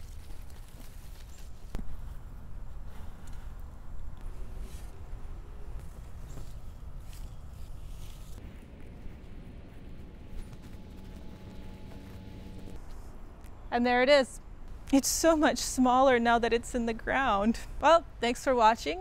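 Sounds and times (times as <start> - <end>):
soil scraping and rustling: 0.0 - 13.2.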